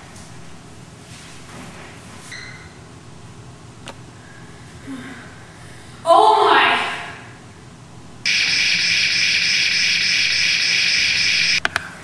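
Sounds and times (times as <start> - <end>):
toy lightsaber electronic hum: 8.3 - 11.7.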